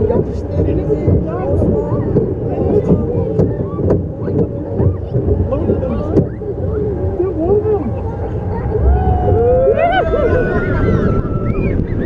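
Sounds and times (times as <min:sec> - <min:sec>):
roller coaster rumbling and clacking: 0:00.0 - 0:12.0
wind buffeting microphone: 0:00.0 - 0:12.0.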